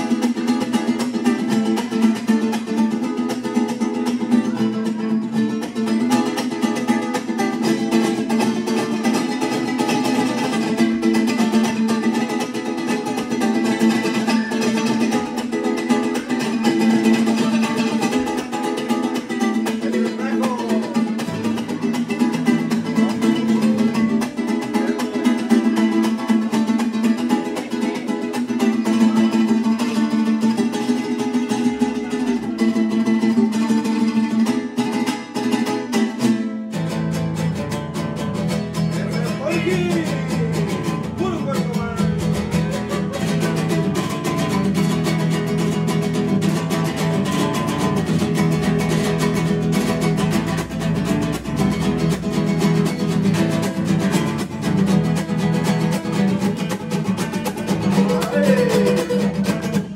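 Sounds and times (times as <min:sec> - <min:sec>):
strummed mariachi strings: 0:00.0 - 0:59.9.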